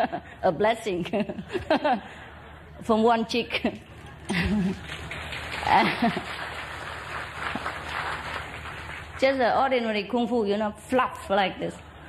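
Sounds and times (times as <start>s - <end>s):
audience clapping: 4.1s - 9.6s
audience laughing: 4.3s - 6.6s.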